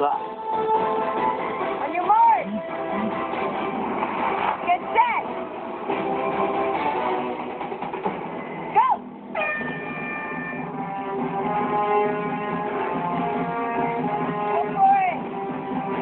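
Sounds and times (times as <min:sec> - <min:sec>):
guitar music: 0:00.8 - 0:07.5, 0:09.2 - 0:14.5
people shouting and cheering: 0:08.7 - 0:10.7
starting horn blast: 0:09.4 - 0:14.6.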